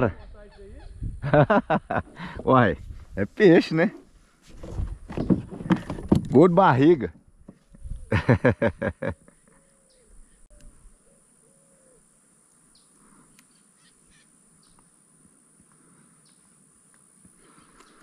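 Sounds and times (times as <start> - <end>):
faint short bird calls: 9.2 - 12.1, 12.7 - 14.8.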